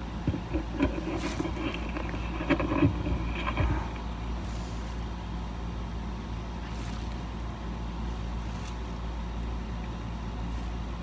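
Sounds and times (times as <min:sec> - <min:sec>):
steady low rumble: 0:00.0 - 0:11.0
faint clicks and crackles: 0:00.2 - 0:05.1.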